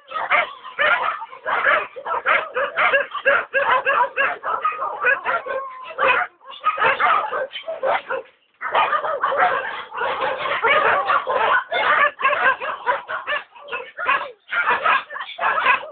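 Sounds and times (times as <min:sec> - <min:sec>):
many dogs barking: 0:00.0 - 0:15.9.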